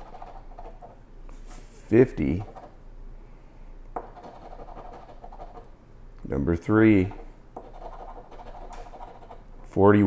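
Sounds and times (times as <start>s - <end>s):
coin scratching ticket: 0.0s - 1.0s, 2.4s - 2.8s, 4.1s - 5.7s, 7.6s - 9.4s.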